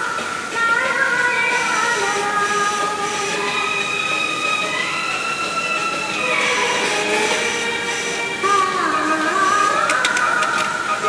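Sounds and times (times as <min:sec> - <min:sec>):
instrumental music with held notes: 0:01.5 - 0:11.0.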